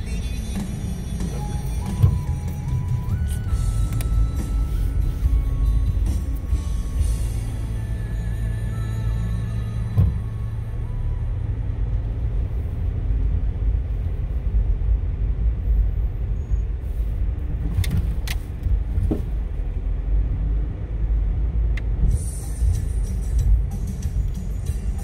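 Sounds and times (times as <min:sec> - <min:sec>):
car interior rumble: 0:00.0 - 0:25.0.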